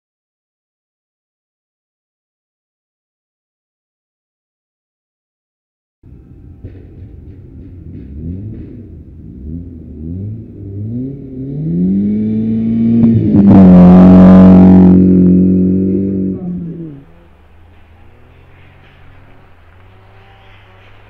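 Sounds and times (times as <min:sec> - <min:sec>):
tyre and snow noise: 0:06.2 - 0:21.0
rally car accelerating hard: 0:07.6 - 0:21.0.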